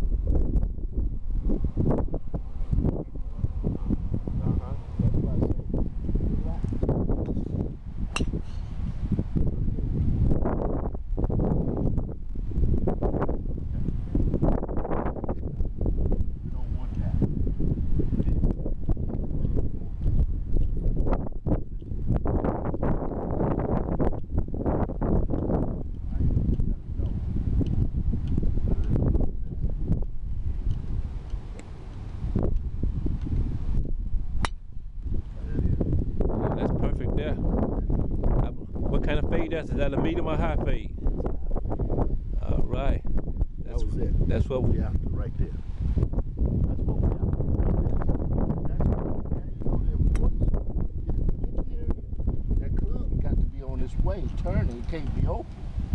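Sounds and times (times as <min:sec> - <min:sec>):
wind buffeting microphone: 0:00.0 - 0:55.9
golf club striking ball: 0:08.1 - 0:08.8, 0:34.4 - 0:34.8.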